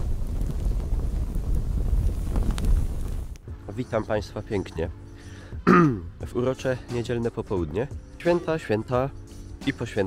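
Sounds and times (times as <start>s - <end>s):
low wind-like rumbling: 0.0s - 6.4s.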